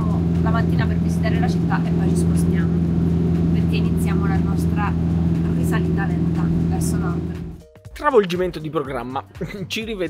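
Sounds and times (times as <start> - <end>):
van engine droning inside cab: 0.0 - 7.6.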